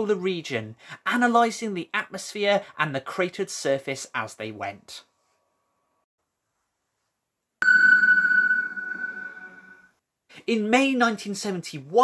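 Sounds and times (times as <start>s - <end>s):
high ringing tone: 7.6s - 9.9s.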